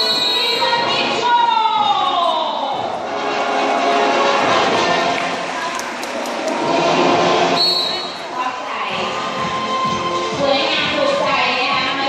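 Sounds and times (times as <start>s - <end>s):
loudspeaker voice: 0.0s - 2.9s, 8.2s - 12.0s
show music: 0.0s - 12.0s.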